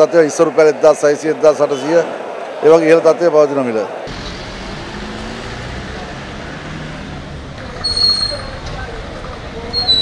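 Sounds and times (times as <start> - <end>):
road traffic rumble: 4.1 - 10.0.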